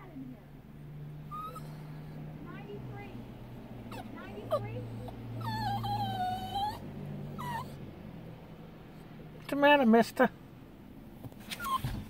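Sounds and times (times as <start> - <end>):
small dog whining: 1.3 - 2.2, 3.9 - 7.8, 11.5 - 12.0.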